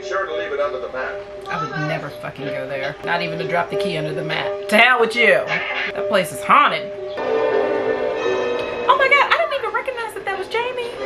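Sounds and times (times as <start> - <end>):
film score held chords: 6.9 - 11.0.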